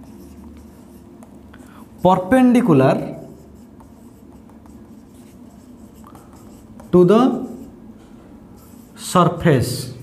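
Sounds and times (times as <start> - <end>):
marker scratching on whiteboard: 0.0 - 7.8, 8.5 - 9.4.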